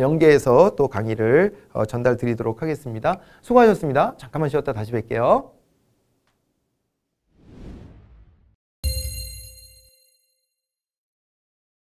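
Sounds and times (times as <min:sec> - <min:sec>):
bright ringing chime: 0:08.8 - 0:10.6.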